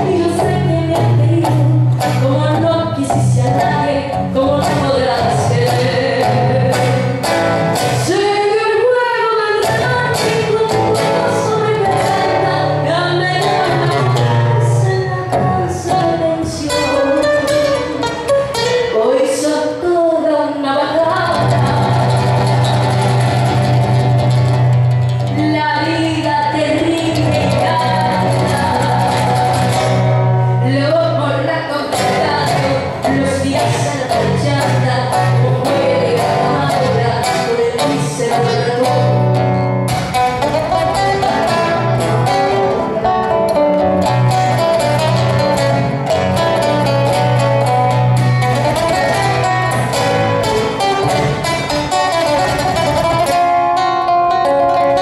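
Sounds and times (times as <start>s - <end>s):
nylon-string guitar: 0.0s - 20.0s, 20.9s - 55.0s
woman singing: 0.0s - 24.0s, 25.2s - 55.0s.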